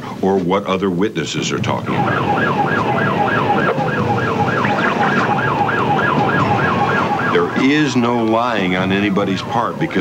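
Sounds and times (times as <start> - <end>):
road and engine noise: 1.4 - 10.0
police siren yelping: 1.8 - 10.0.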